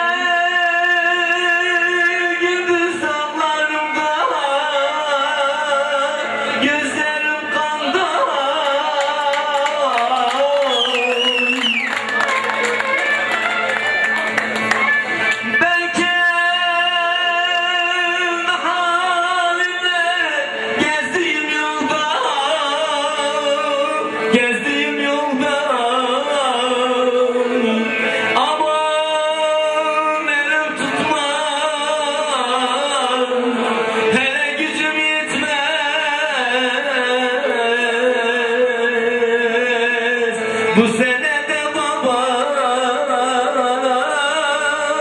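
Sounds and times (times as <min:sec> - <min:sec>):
man singing: 0:00.0 - 0:12.0, 0:15.3 - 0:45.0
folk instruments: 0:00.0 - 0:45.0.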